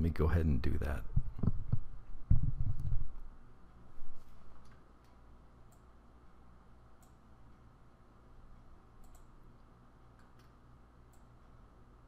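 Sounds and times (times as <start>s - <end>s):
faint low hum: 0.0s - 12.0s
computer mouse clicks: 7.0s - 7.2s, 9.0s - 9.4s, 10.1s - 11.3s.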